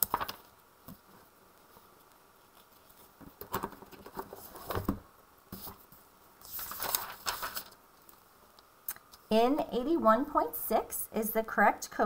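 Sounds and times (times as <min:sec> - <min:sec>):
pages rustling and flapping: 0:00.0 - 0:08.2.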